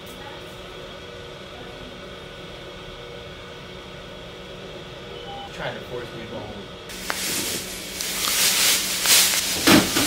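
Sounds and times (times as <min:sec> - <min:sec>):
ventilation hum and hiss: 0:00.0 - 0:10.0
faint steady equipment tones: 0:04.8 - 0:10.0.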